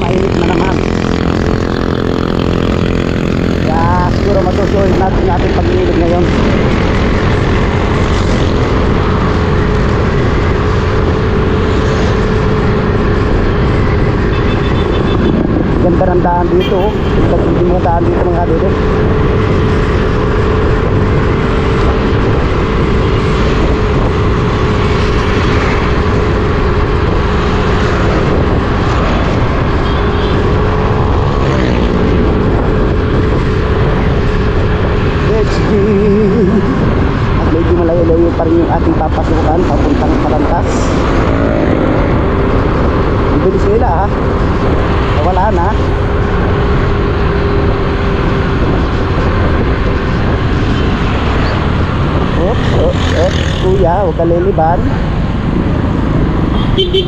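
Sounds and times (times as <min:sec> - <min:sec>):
road and wind noise: 0:00.0 - 0:57.0.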